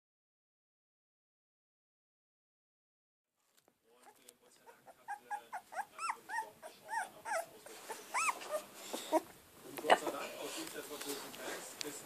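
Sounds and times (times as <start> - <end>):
puppy whimpering squeaks: 4.0 - 9.3.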